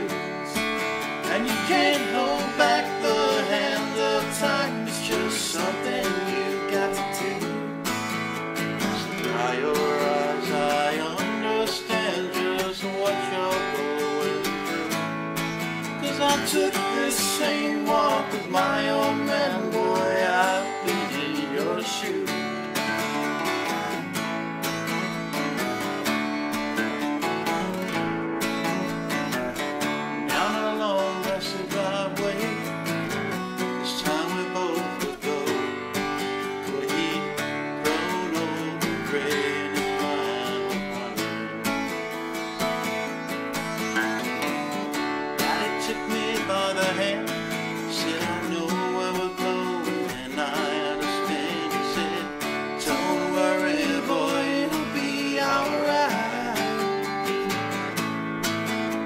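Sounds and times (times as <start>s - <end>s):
acoustic guitars playing country: 0.0s - 59.0s.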